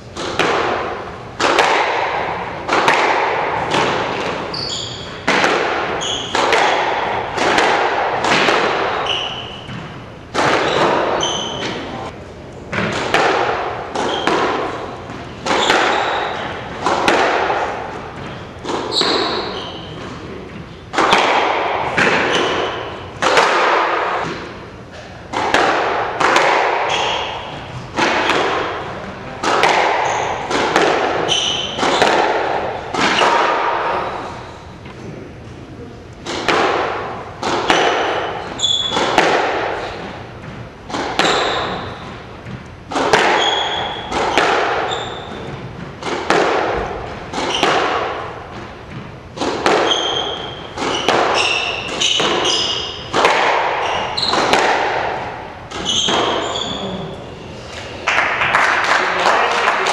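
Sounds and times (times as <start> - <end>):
squash ball hitting racket and walls: 0.0 - 59.9
shoe squeaks on hardwood floor: 4.4 - 5.2, 5.9 - 6.4, 8.9 - 10.0, 10.6 - 12.0, 14.0 - 14.4, 15.5 - 16.6, 18.2 - 20.8, 31.2 - 32.1, 38.0 - 39.2, 41.2 - 42.2, 43.3 - 44.2, 44.8 - 45.6, 49.8 - 53.1, 53.8 - 54.5, 55.7 - 57.7.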